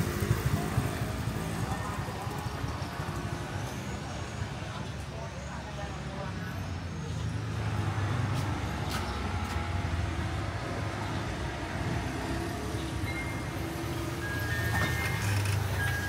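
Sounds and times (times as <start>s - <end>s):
vehicle engine rumble: 0.0s - 16.0s.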